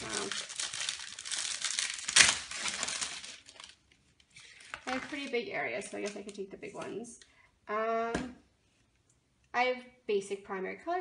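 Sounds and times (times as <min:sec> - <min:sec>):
plastic packaging crinkling: 0:00.0 - 0:06.4.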